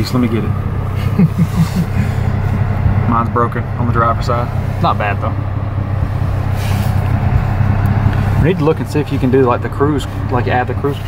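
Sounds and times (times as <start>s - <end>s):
car engine idling: 0.0s - 11.0s
short low laugh: 0.9s - 2.3s.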